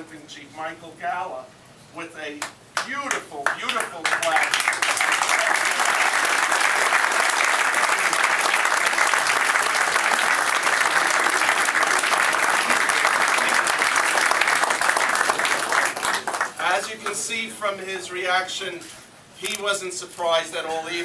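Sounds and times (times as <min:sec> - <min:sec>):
crowd applauding: 0:02.8 - 0:16.7.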